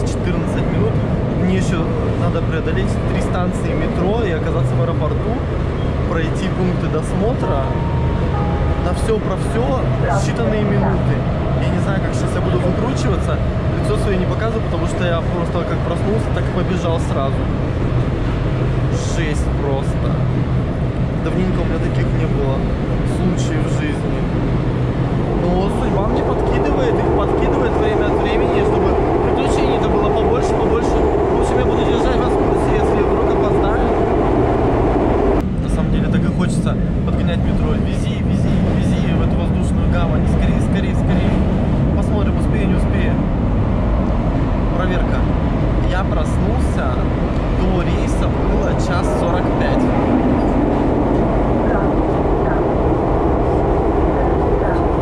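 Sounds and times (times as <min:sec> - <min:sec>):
metro train rumble inside carriage: 0:00.0 - 0:55.0.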